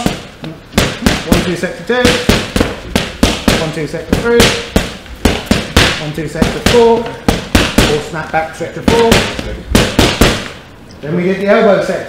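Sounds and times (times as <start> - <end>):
boxing gloves slapping mitts: 0.0 - 10.6.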